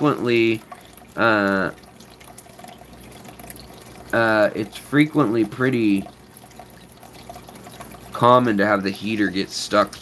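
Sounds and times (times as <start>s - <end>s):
aquarium water trickling: 0.0s - 10.0s
water drips: 0.0s - 10.0s.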